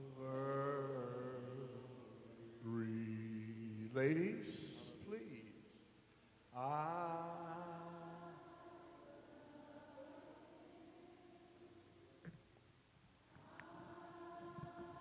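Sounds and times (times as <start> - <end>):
man singing long held note: 0.0 - 5.4, 6.6 - 8.6.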